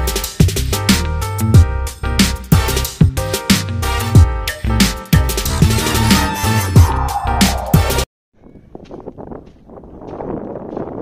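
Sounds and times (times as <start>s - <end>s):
wind buffeting microphone: 8.4s - 11.0s.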